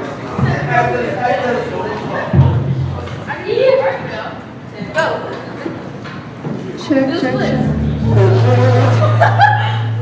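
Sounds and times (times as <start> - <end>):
held low bass note: 7.2 - 10.0.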